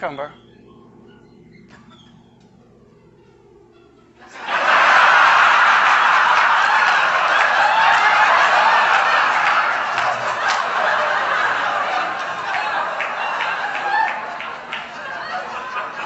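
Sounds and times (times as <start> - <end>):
audience laughing: 4.2 - 16.0.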